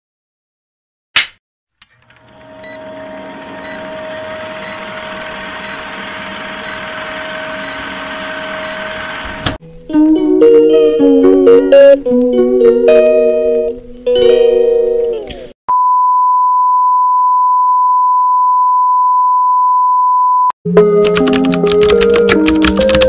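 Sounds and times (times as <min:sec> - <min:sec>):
film projector whirring hiss: 0:01.8 - 0:09.6
plucked-string music: 0:09.6 - 0:15.5.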